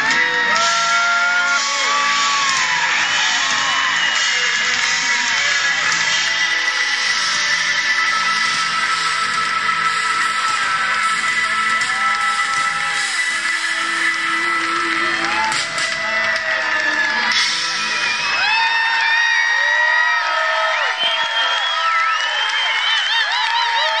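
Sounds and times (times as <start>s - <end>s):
live band playing: 0.0s - 18.6s
crowd cheering and whooping: 0.0s - 24.0s.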